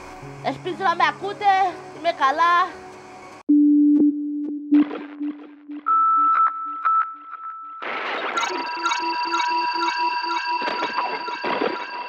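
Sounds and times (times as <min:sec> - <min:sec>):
echoing high synth beep: 0:03.5 - 0:12.0
held synth tones: 0:03.5 - 0:12.0
fast electronic pulse: 0:07.8 - 0:12.0.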